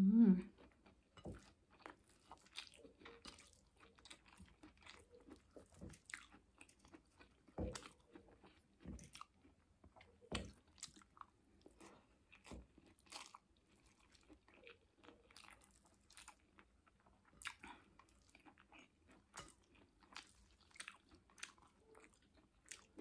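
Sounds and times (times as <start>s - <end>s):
person chewing food: 0.4s - 23.0s.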